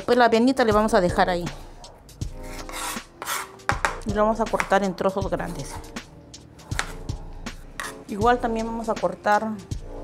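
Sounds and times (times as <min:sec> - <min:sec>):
knife slicing pepper: 0:02.4 - 0:03.7, 0:06.7 - 0:07.1.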